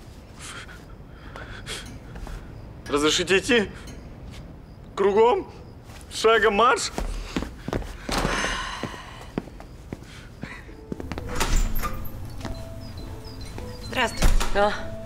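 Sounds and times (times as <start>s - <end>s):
shuffling: 5.8s - 14.0s
soft background music: 8.9s - 15.0s.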